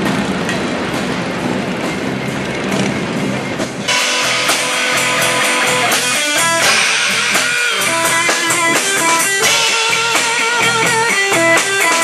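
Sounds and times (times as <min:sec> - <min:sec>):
freight train wagons on rails: 0:00.0 - 0:12.0
music playing outdoors: 0:00.0 - 0:12.0.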